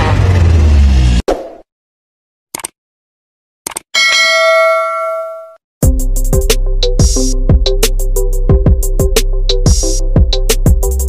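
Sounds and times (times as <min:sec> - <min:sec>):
bell chime ding: 0:04.0 - 0:05.6
music with a beat: 0:05.8 - 0:11.0.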